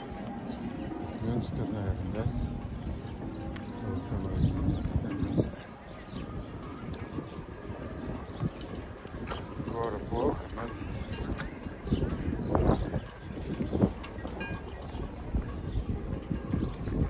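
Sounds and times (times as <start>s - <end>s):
indistinct voices of passers-by: 0.0s - 17.0s
wind rumble on microphone: 0.0s - 17.0s.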